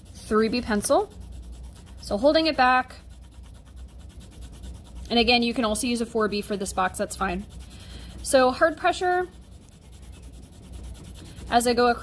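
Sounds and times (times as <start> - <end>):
low steady hum: 0.0 - 12.0
pencil shading on paper: 0.0 - 12.0.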